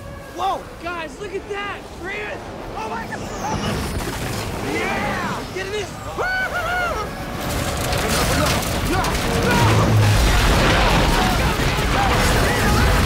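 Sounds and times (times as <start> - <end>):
low storm wind: 0.0 - 13.0.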